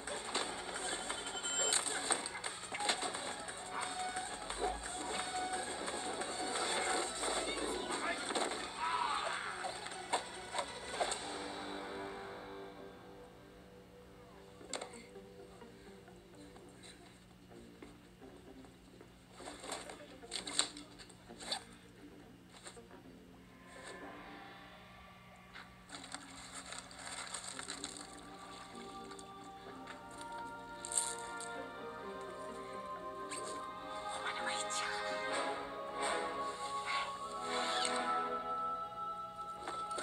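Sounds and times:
background music: 0.0s - 40.0s.

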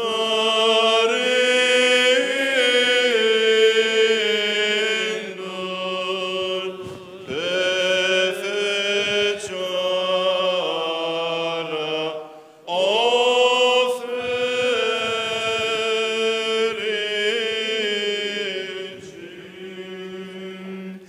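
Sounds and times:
voices chanting slow melody: 0.0s - 21.0s.

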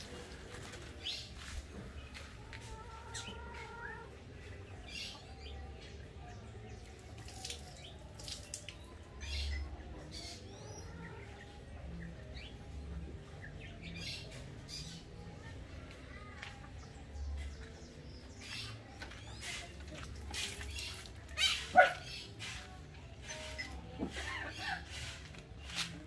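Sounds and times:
birds chirping: 0.0s - 25.9s.

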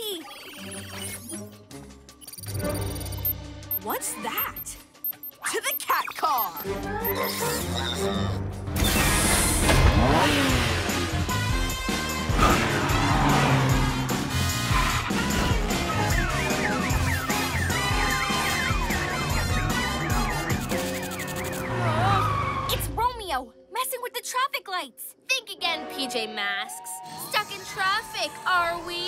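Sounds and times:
background music: 0.0s - 29.0s
cartoon car engine revving: 6.9s - 23.0s
wailing siren: 15.8s - 22.8s.

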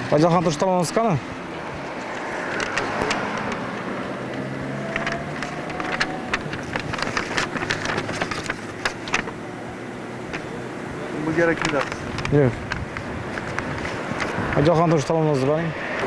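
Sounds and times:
car engine humming: 0.0s - 16.0s
street traffic: 0.0s - 16.0s
sharp clicks and ticks: 1.8s - 9.4s, 11.4s - 14.8s.

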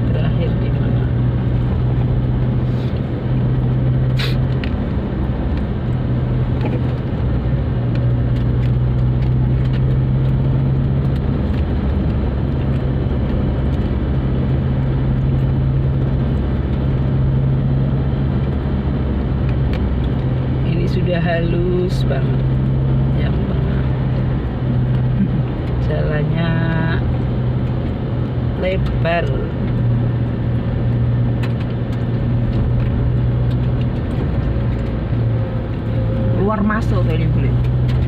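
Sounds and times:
car engine and road hum: 0.0s - 38.0s.

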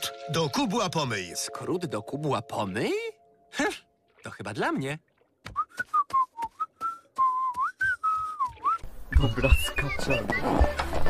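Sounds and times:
person whistling a tune: 5.5s - 10.0s.

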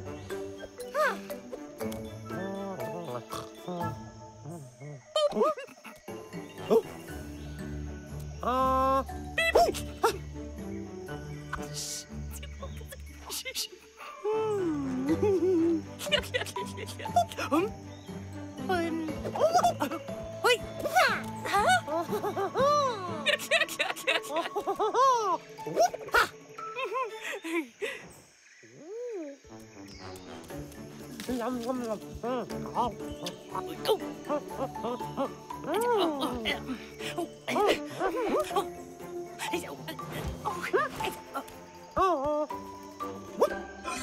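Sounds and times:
light background music: 0.0s - 28.4s, 29.4s - 44.0s.

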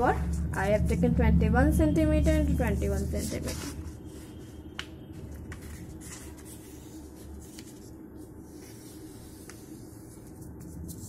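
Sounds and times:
paper rustling and sliding: 2.6s - 11.0s.

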